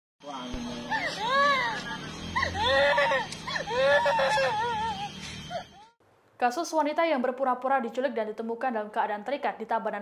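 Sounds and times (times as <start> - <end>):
woman wailing sobs: 0.8 - 6.0.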